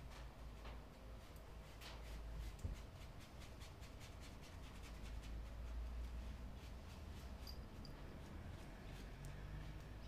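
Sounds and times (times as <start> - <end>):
paintbrush scrubbing canvas: 1.2 - 10.0.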